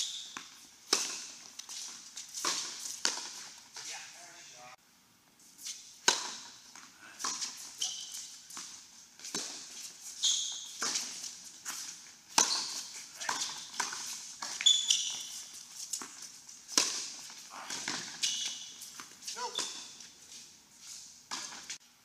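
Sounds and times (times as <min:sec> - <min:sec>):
shoes squeaking on court: 0:00.0 - 0:03.9, 0:05.4 - 0:21.8
tennis racket strikes: 0:06.0 - 0:06.6, 0:12.3 - 0:15.4, 0:16.0 - 0:18.7
tennis ball bounces: 0:06.0 - 0:07.6, 0:12.3 - 0:15.2, 0:16.7 - 0:18.2.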